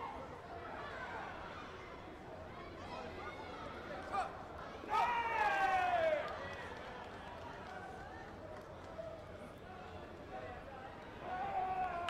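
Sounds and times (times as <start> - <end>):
crowd murmur in sports hall: 0.0 - 12.0.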